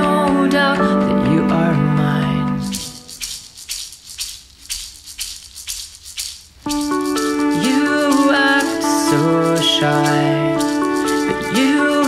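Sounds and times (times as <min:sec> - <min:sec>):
shaker percussion: 0:02.5 - 0:12.0.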